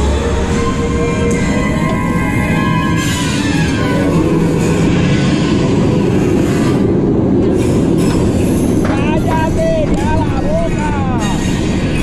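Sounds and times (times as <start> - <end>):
roller coaster rumbling on track: 0.0 - 12.0
voices: 8.9 - 11.5.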